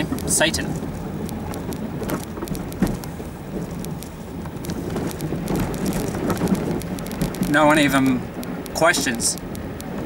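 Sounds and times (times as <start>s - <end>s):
small clicks and knocks: 0.0s - 10.0s
vehicle rumbling on dirt track: 0.0s - 10.0s.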